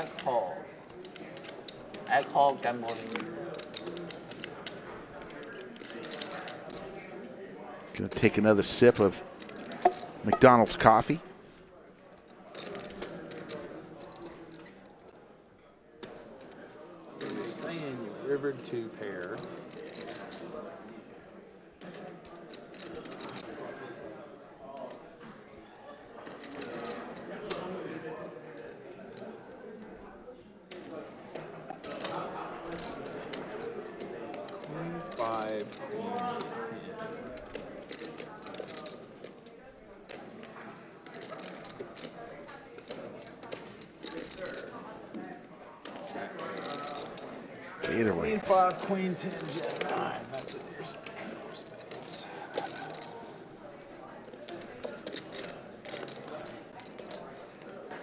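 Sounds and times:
murmured conversation: 0:00.0 - 0:58.0
poker chips clicking: 0:08.1 - 0:11.1, 0:46.4 - 0:57.3.

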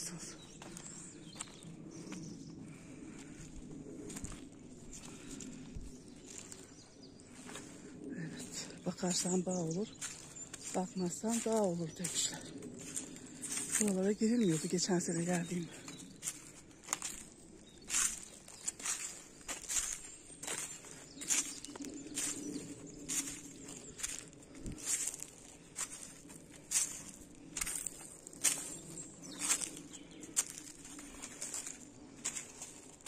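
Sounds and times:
footsteps on dry leaves: 0:00.2 - 0:33.0.

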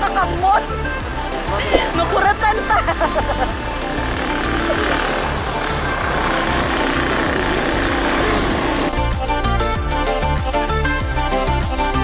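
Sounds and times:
vehicle engine running: 0:00.0 - 0:09.5.

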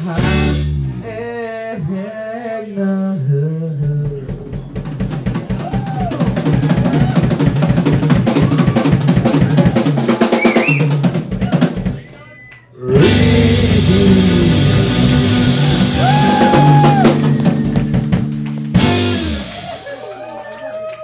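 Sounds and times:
fast drum fill: 0:04.0 - 0:12.1, 0:12.9 - 0:20.4
sustained electric guitar: 0:12.8 - 0:20.0.

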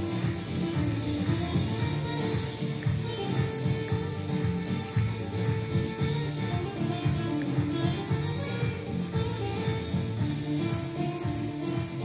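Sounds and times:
belly-dance music: 0:00.0 - 0:12.0
jingling: 0:00.0 - 0:12.0.

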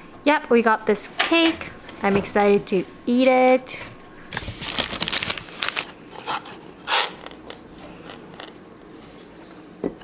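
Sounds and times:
cardboard packaging rustling: 0:04.3 - 0:07.2.

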